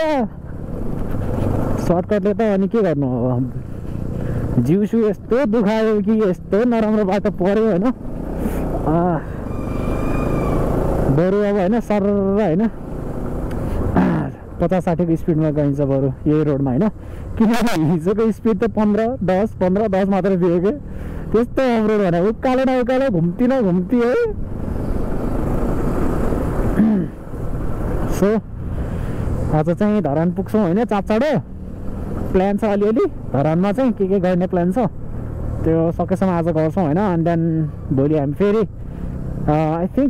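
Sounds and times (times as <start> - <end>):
motorcycle engine rumble: 0.0 - 40.0
road and wind noise: 0.0 - 40.0
person speaking: 4.4 - 9.4
short vocal sound: 14.0 - 14.4.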